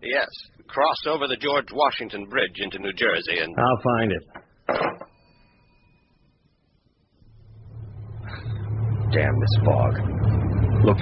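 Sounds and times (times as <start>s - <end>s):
car engine humming: 7.2s - 11.0s.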